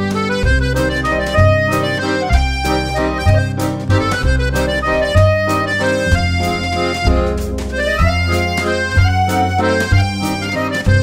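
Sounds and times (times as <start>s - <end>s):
accordion ballroom dance music: 0.0s - 11.0s.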